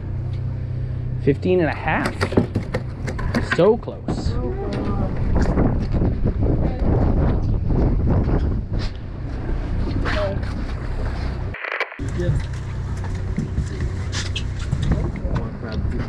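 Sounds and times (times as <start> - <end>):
boat engine humming: 0.0 - 5.2, 10.6 - 15.7
wind on microphone: 4.0 - 12.4.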